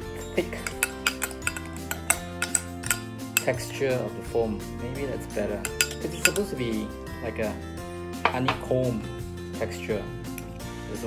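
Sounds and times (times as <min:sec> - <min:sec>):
teaspoon clinking against glass jar: 0:00.0 - 0:03.7, 0:05.4 - 0:06.7
background music: 0:00.0 - 0:11.0.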